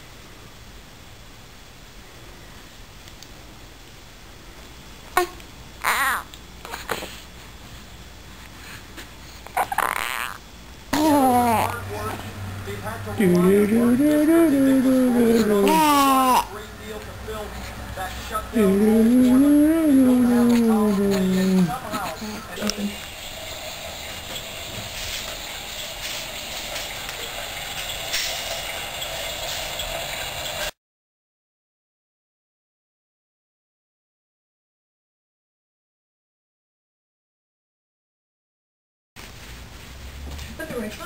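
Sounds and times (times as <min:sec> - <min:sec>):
newborn baby squeaking: 0:09.4 - 0:10.4, 0:15.3 - 0:16.5
cradle swing mechanical whirr: 0:10.9 - 0:30.7.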